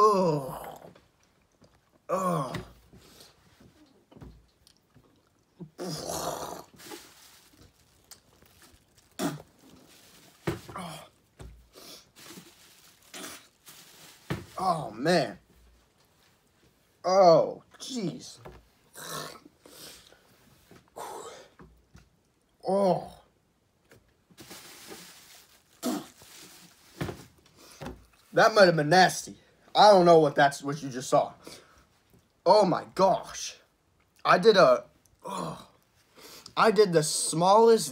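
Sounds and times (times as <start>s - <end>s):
man grunting: 0.0s - 0.9s, 2.1s - 2.7s
man gagging and retching: 0.0s - 2.8s, 4.7s - 11.3s, 12.9s - 13.6s, 18.9s - 19.6s, 25.8s - 26.2s.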